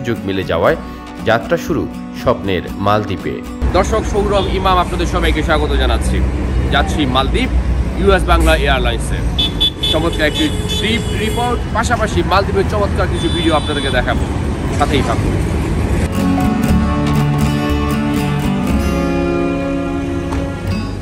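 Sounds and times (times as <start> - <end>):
soft guitar music: 0.0 - 4.2, 16.0 - 21.0
road traffic rumble: 3.6 - 21.0
vehicle horn: 9.4 - 11.7.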